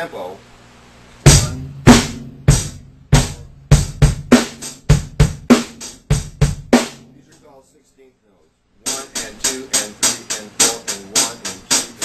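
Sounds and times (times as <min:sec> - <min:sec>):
rock drum kit beat: 0:01.2 - 0:07.4, 0:08.9 - 0:12.0.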